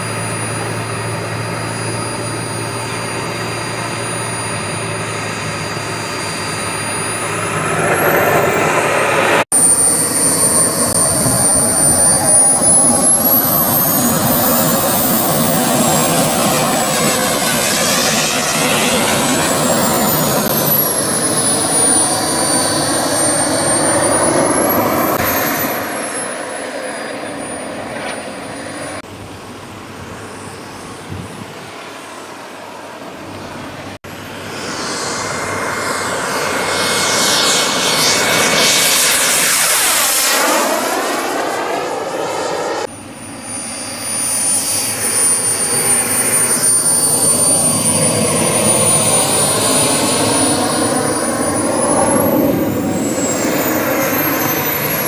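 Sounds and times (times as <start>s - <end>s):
model jet turbine whining: 0.0s - 55.0s.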